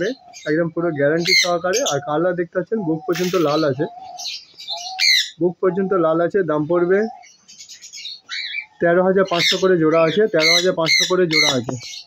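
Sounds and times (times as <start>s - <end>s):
man speaking: 0.0s - 4.0s, 5.4s - 7.2s, 8.8s - 11.8s
parrots chirping and calling: 0.0s - 12.0s.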